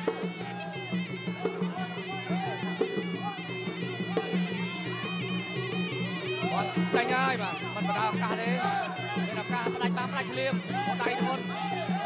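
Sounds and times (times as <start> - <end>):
reed pipe nasal melody: 0.0 - 12.0.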